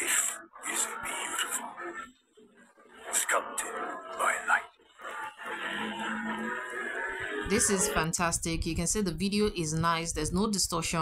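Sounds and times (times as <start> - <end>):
breathy whisper-like voice: 0.0 - 2.1, 2.9 - 8.0.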